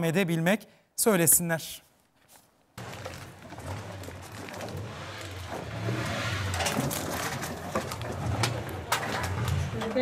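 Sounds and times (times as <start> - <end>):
plastic scrap rustling and clattering: 2.8 - 10.0.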